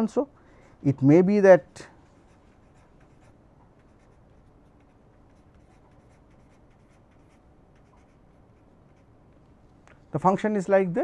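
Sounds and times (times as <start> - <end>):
pen scratching on paper: 2.2 - 9.2.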